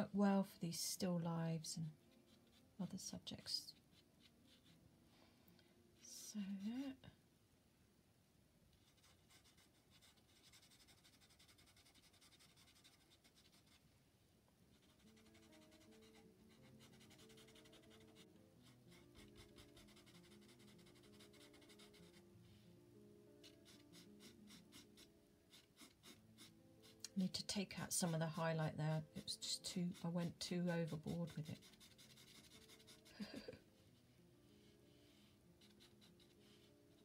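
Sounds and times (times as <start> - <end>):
soft background music: 0.0 - 7.6, 8.4 - 37.0
charcoal pencil scratching paper: 2.0 - 4.8, 8.8 - 13.8, 14.7 - 22.3, 23.4 - 33.5, 34.6 - 37.0.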